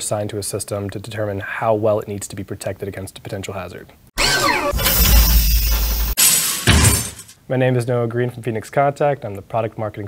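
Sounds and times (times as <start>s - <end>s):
loud noisy crash hit: 4.2s - 7.3s.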